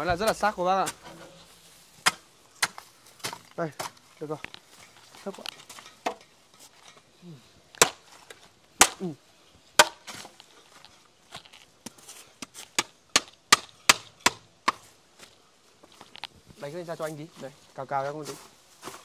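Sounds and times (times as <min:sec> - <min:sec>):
hand tool chopping wood: 0:02.0 - 0:04.0, 0:05.4 - 0:06.2, 0:07.8 - 0:09.1, 0:09.8 - 0:10.4, 0:12.4 - 0:14.9.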